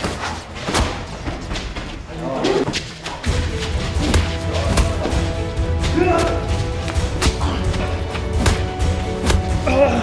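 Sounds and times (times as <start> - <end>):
background music with deep bass: 3.2 - 10.0
person shouting: 9.6 - 10.0.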